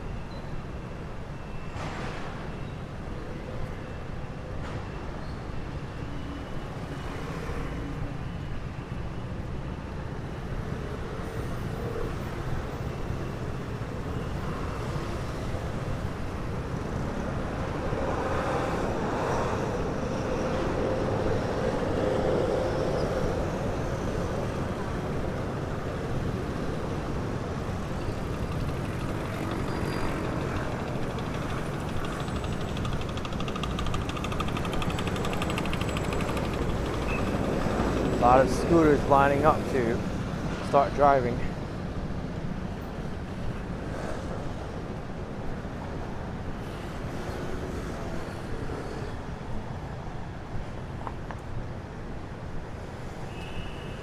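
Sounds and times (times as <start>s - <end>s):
cars running: 16.1s - 41.5s
motor scooters running: 27.7s - 38.7s.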